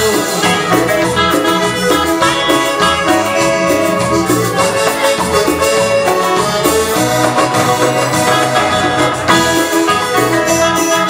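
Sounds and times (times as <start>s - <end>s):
drums and hand percussion: 0.0s - 11.0s
sustained keyboard notes: 0.0s - 11.0s.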